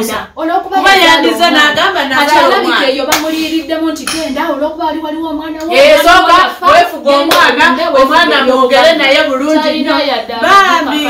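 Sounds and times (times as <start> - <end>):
woman talking: 0.0 - 11.0
hand clap: 3.1 - 3.4, 7.3 - 7.5.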